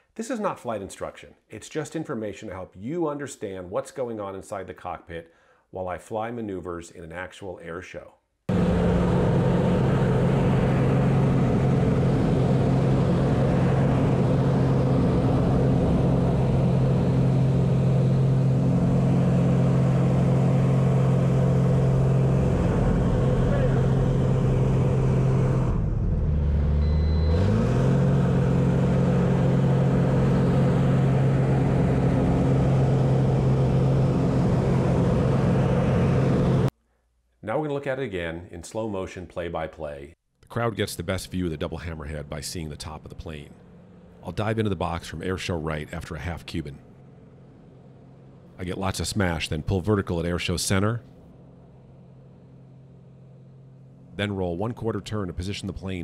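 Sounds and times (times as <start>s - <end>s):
propeller plane engine running: 8.5s - 36.7s, 51.1s - 54.4s.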